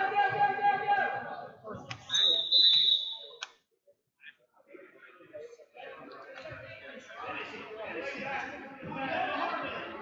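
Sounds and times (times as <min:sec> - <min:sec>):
faint voices: 0:04.2 - 0:10.0.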